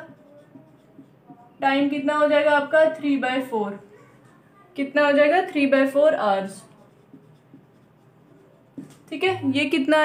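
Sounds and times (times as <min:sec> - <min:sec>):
marker rubbing on whiteboard: 0:00.0 - 0:10.0.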